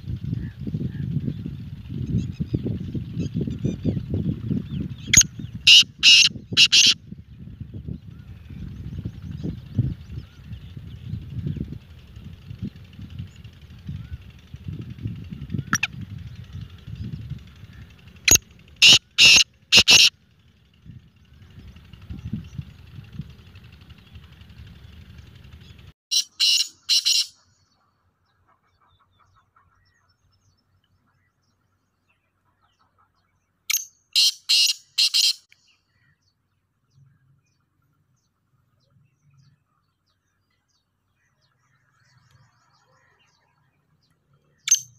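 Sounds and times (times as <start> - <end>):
low rumble: 0.0 - 26.0
bird harsh grating call: 5.0 - 7.0, 17.7 - 20.1, 34.2 - 35.5.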